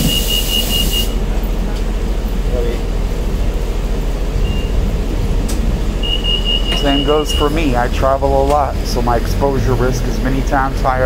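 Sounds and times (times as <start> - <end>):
air hiss: 0.0 - 1.2
bus engine and road rumble: 0.0 - 11.0
high pulsing beep: 4.4 - 4.8, 6.0 - 7.6.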